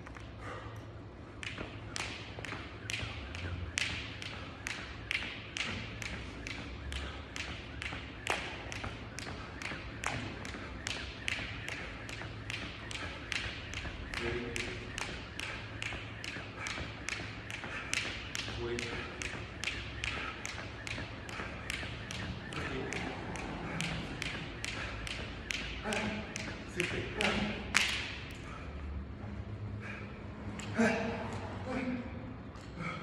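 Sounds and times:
skipping rope slapping rubber floor: 0:01.3 - 0:28.6.

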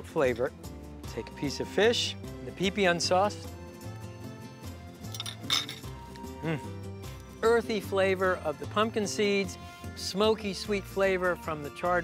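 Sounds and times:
background music: 0:00.0 - 0:12.0
short vocal sound: 0:06.4 - 0:06.8.

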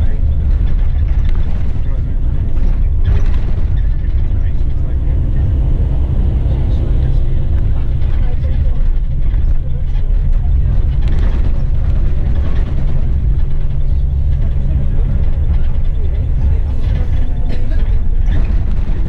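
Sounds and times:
coach engine rumble: 0:00.0 - 0:19.0
indistinct voices talking: 0:00.0 - 0:19.0
road noise: 0:00.0 - 0:19.0.

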